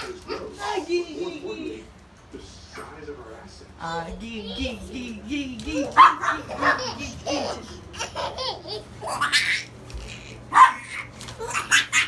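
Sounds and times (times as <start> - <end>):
baby laughing: 5.6 - 12.0.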